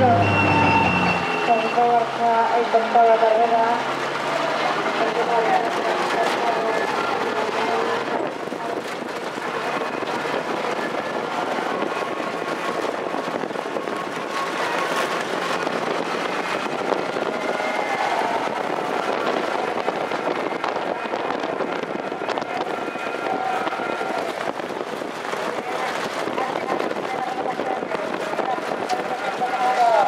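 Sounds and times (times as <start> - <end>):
faint shouting voices: 0.0 - 30.0
trotting horses racing past: 0.0 - 30.0.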